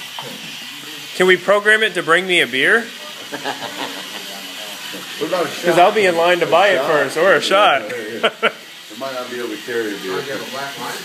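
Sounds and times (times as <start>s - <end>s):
steady hiss: 0.0s - 11.0s
faint background voices: 2.9s - 6.1s.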